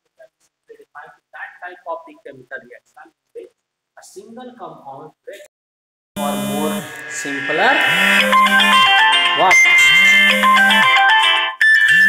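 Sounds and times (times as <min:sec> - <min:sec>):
smartphone ringtone melody: 0:06.8 - 0:12.0.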